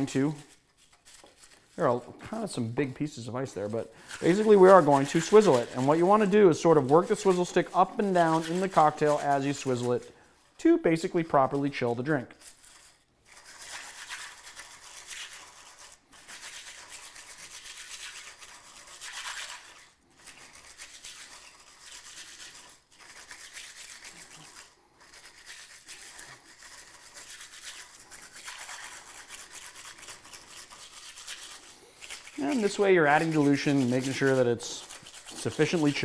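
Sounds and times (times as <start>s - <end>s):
ice churning against glass: 4.0s - 9.9s.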